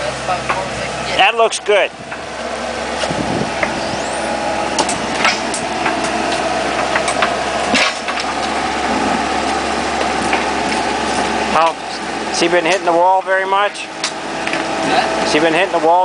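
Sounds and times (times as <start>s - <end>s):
excavator diesel engine running: 0.0s - 16.0s
sharp clicks and knocks: 4.8s - 9.0s, 14.0s - 14.7s.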